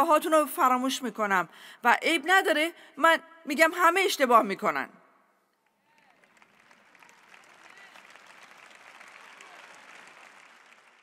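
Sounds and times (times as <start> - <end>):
faint crowd applause: 5.6 - 11.0.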